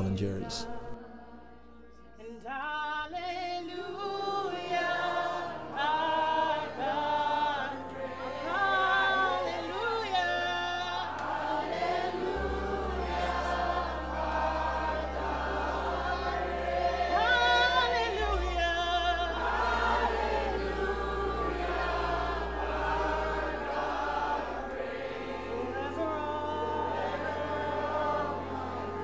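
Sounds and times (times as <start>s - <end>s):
group singing in harmony: 0.0s - 29.0s.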